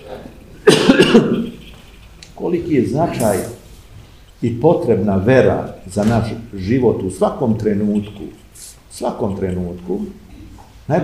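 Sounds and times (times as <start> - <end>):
man coughing: 0.6 - 1.7.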